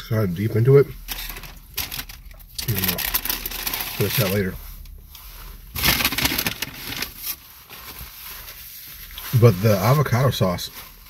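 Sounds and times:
paper wrapper rustling: 1.0 - 11.0.

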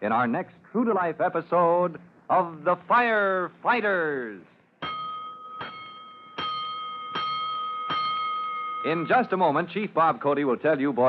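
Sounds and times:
alarm bell strokes ringing: 4.8 - 9.8.

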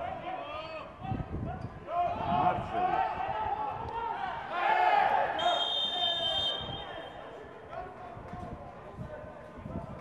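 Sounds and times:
players shouting: 1.9 - 7.3
referee's whistle blast: 5.4 - 7.2.

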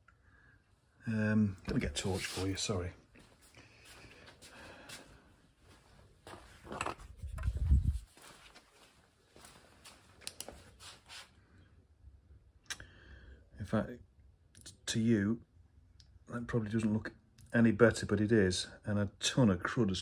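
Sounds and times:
handling noises: 6.2 - 11.2.

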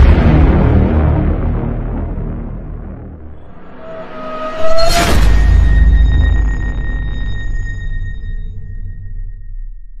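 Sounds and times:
deep boom: 0.0 - 9.4
low rumble: 0.0 - 10.0
thin high ringing tone: 3.4 - 9.8.

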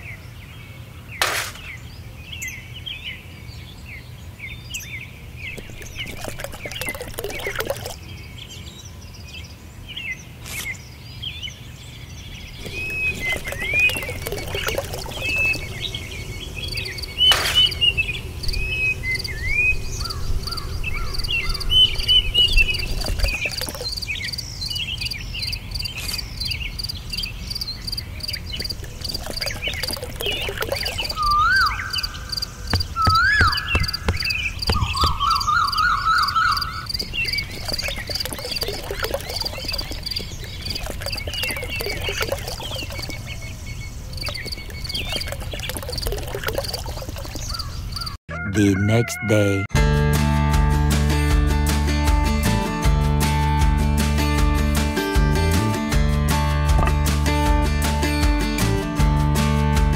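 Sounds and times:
birds chirping: 1.6 - 49.8
rapid pulsed calls: 12.6 - 24.0, 28.6 - 48.2.

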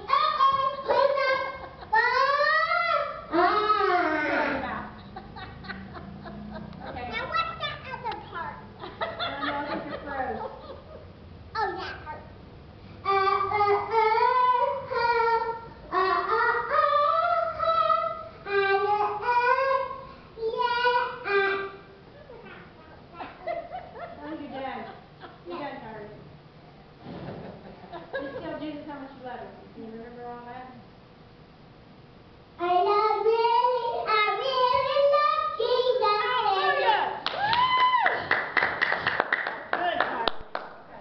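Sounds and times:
girl singing alone: 0.0 - 4.6, 13.0 - 21.8, 32.6 - 36.9
hand clapping: 37.2 - 40.8.

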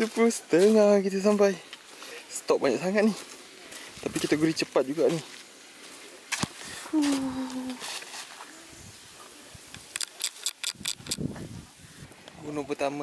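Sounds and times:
person humming: 6.9 - 7.9.

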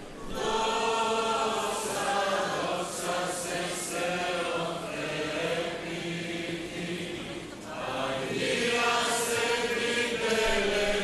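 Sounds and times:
slow hymn singing: 0.0 - 11.0.

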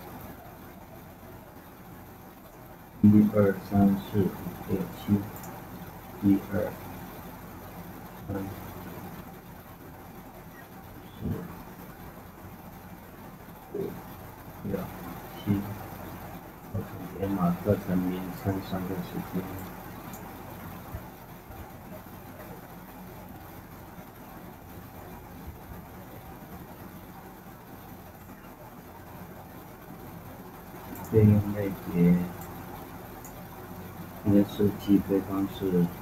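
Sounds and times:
microphone hiss and hum: 0.0 - 36.0.

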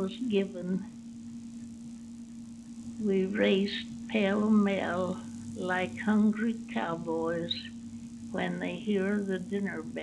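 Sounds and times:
faint hiss: 0.0 - 10.0
low electrical hum: 0.0 - 10.0.

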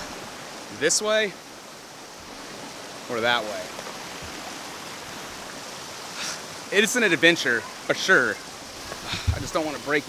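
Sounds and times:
creek rushing over rocks: 0.0 - 10.0.

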